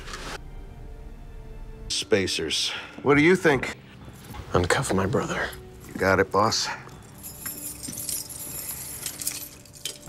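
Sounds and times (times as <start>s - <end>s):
keys and handcuffs jingling: 6.8s - 10.0s.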